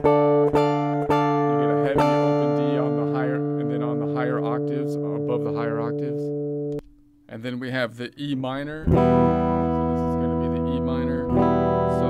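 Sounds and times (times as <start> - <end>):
guitar chord ringing: 0.0 - 7.0, 8.8 - 12.0.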